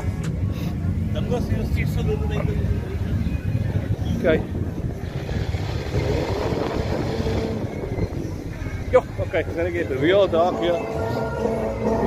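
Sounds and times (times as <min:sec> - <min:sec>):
car engines rumbling: 0:00.0 - 0:12.0
wind noise on microphone: 0:02.8 - 0:09.2.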